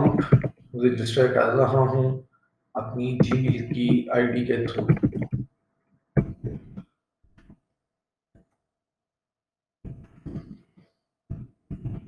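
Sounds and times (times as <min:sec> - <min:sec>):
man speaking: 0:00.0 - 0:02.2, 0:02.8 - 0:05.2.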